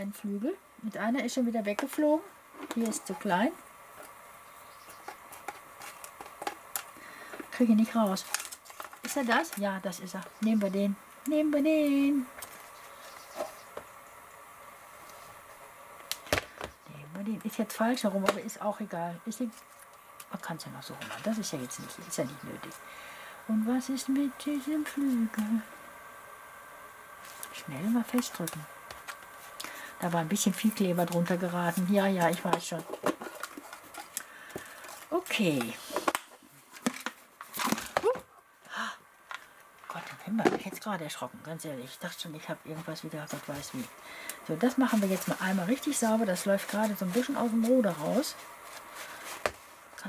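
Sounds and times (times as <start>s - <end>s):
handling craft materials: 5.0s - 13.8s, 27.2s - 38.3s, 42.7s - 49.9s.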